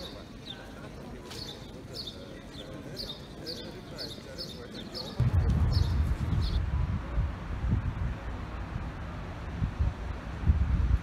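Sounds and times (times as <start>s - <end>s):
wind buffeting microphone: 5.2s - 11.0s.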